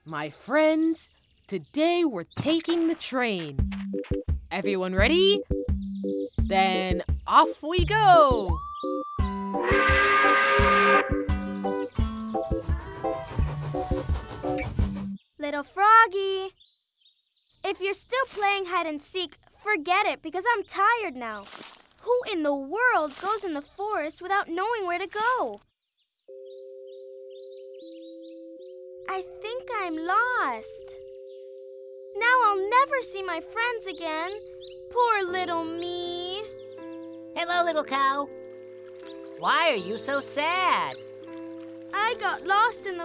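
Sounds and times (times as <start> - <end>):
bouncy children's music: 3.0 - 9.7, 10.6 - 15.2, 27.3 - 31.4, 32.1 - 38.5, 39.1 - 43.0
cartoon steam train whistle: 9.5 - 11.4
faint bird chirps: 25.6 - 43.0.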